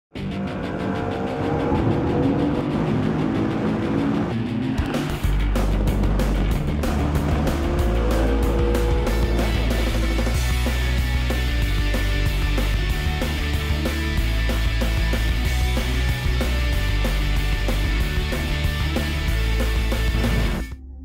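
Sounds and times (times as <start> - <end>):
engine accelerating: 0.1 - 20.8
music with heavy bass beat: 2.7 - 20.8.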